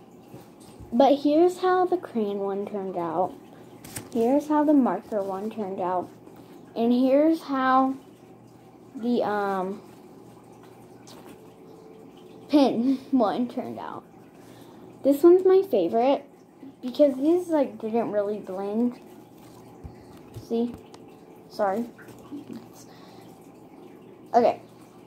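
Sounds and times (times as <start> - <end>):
low steady hum: 0.0 - 25.0
paper coffee filter rustling: 3.8 - 6.1, 18.6 - 20.9.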